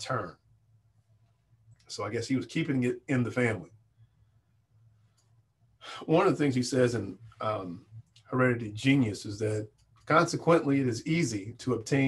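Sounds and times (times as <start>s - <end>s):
man talking: 0.0s - 0.4s, 1.9s - 3.7s, 5.8s - 12.0s
faint low hum: 0.0s - 12.0s.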